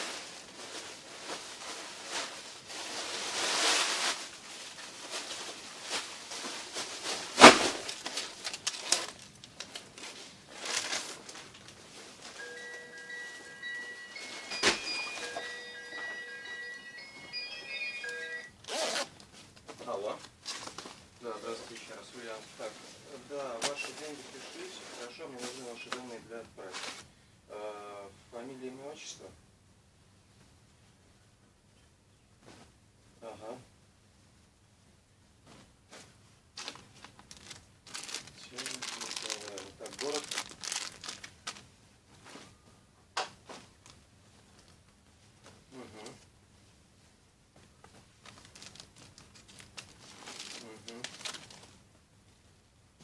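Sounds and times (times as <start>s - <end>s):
plastic packaging crinkling: 0.0s - 19.2s, 20.0s - 22.0s, 36.6s - 41.7s, 48.1s - 51.8s
soft music with bell-like notes: 12.4s - 18.6s
jacket zipper rasp: 18.7s - 19.1s
person speaking: 37.9s - 40.5s, 50.5s - 51.2s.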